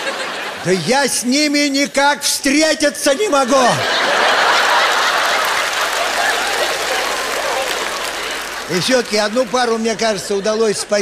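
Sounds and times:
audience laughing: 0:00.0 - 0:01.3, 0:03.1 - 0:11.0.

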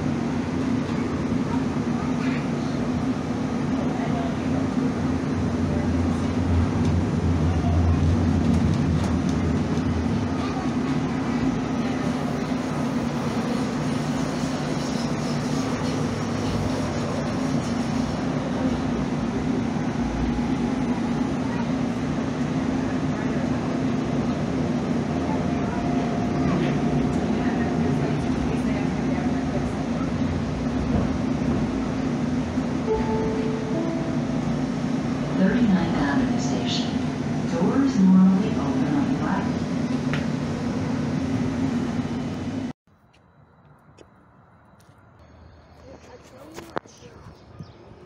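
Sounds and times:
train rumbling on track: 0:00.0 - 0:42.8.

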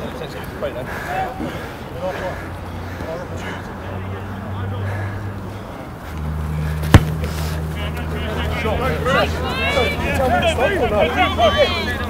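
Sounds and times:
distant players shouting: 0:00.2 - 0:12.0
sharp knock: 0:06.9 - 0:07.2.

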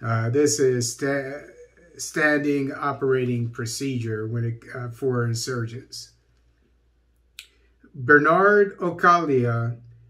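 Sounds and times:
man reading aloud: 0:00.0 - 0:06.1, 0:07.9 - 0:09.8.

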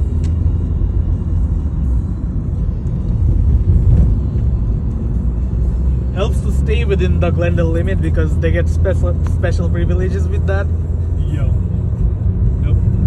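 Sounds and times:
car engine: 0:00.0 - 0:13.0
road noise: 0:00.0 - 0:13.0.

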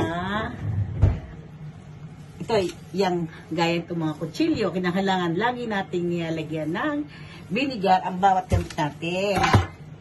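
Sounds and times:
woman's voice: 0:00.0 - 0:00.9, 0:02.4 - 0:09.7.

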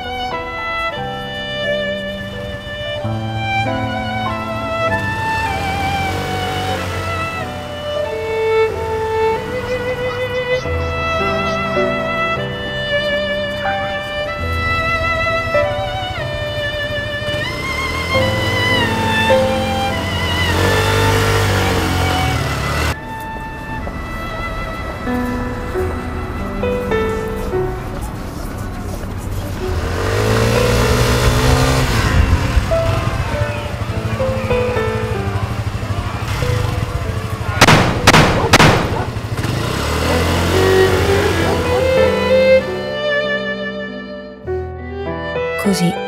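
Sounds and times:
motor scooter engine running: 0:00.0 - 0:43.1
slow music with strings: 0:00.0 - 0:46.0
pistol shots: 0:37.6 - 0:39.2.

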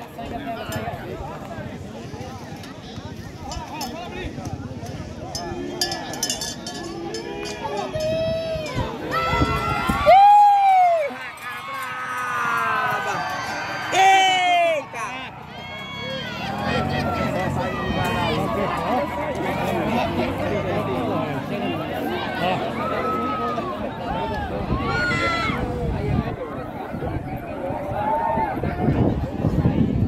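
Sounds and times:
crowd of men shouting: 0:07.2 - 0:21.2.

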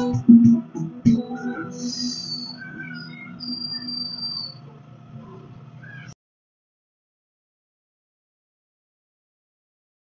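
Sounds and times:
thin high tone: 0:00.0 - 0:04.6.

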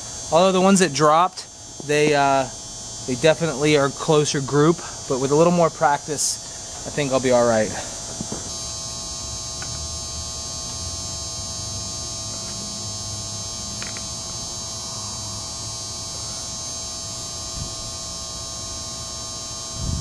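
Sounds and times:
hum with high whine: 0:00.0 - 0:20.0.

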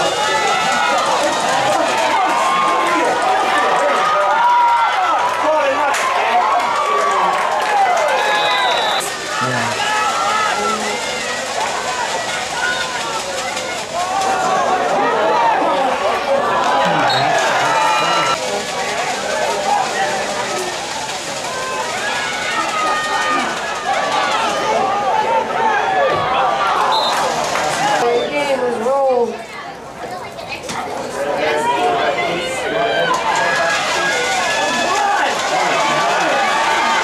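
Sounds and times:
crowd talking and shouting: 0:00.0 - 0:37.0
short whistle blasts: 0:08.3 - 0:09.1.

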